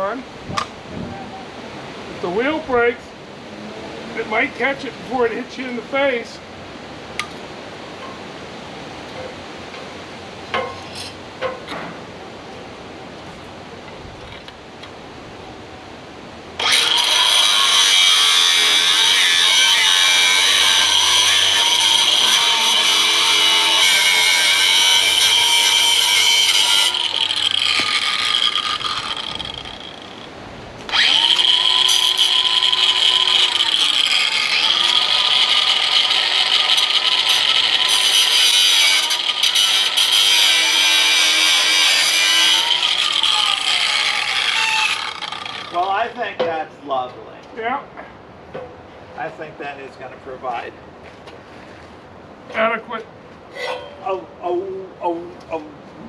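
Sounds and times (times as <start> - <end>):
angle grinder whining: 16.6 - 30.3, 30.9 - 45.9.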